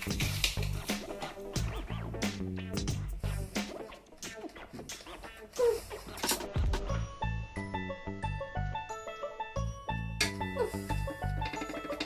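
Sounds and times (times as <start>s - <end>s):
music with bass beat: 0.0s - 8.8s.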